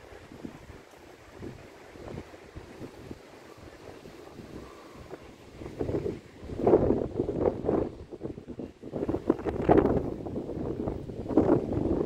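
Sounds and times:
breaking surf: 0:00.0 - 0:12.0
rumbling wind buffets: 0:00.0 - 0:12.0
wind gusting across microphone: 0:00.0 - 0:12.0.

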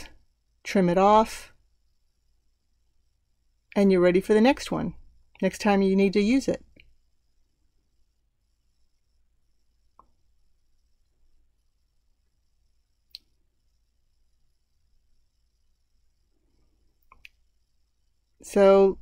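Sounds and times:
faint plastic clicks: 0:17.0 - 0:17.5.

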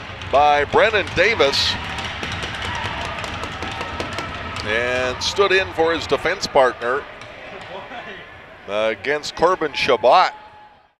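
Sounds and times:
crowd noise: 0:00.0 - 0:10.9.

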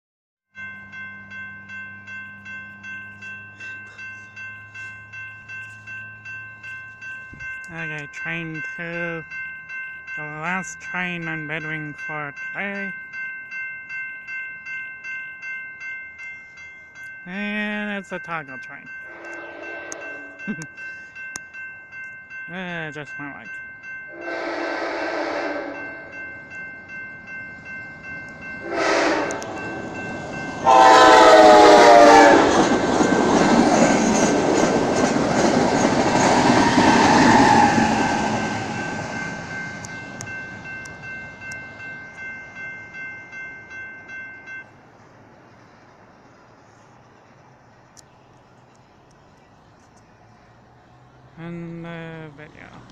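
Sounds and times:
railroad crossing bell ringing: 0:00.5 - 0:48.0, 0:50.1 - 0:52.9
train horn blasts: 0:19.1 - 0:20.4, 0:24.1 - 0:26.1, 0:28.6 - 0:29.7, 0:30.6 - 0:32.6.

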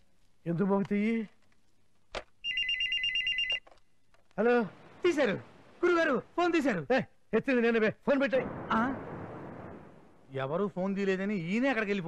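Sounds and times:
telephone ringing: 0:02.4 - 0:03.7.

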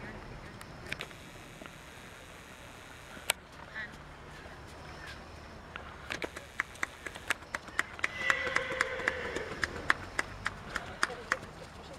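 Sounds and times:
hand clapping: 0:06.6 - 0:11.5.

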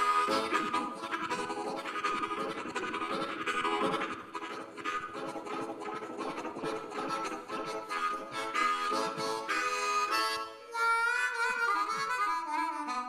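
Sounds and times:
blues harmonica: 0:00.0 - 0:13.0.

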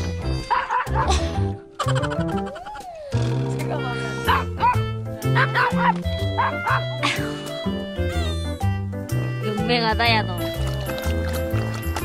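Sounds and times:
background music: 0:00.0 - 0:12.0
dog barking in high yaps: 0:04.3 - 0:04.8, 0:05.4 - 0:06.8.

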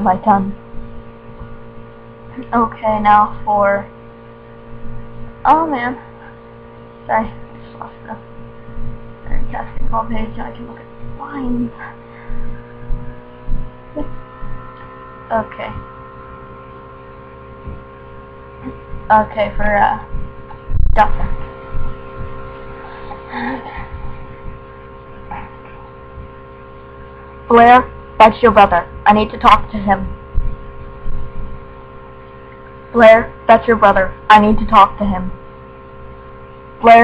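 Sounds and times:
steady electrical hum: 0:00.0 - 0:37.0
soft low bumps: 0:07.0 - 0:33.0.

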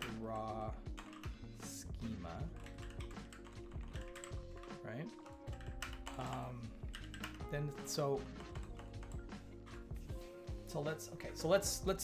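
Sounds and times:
computer keyboard typing: 0:00.0 - 0:01.4, 0:02.3 - 0:09.4
chillhop background music: 0:00.0 - 0:12.0.

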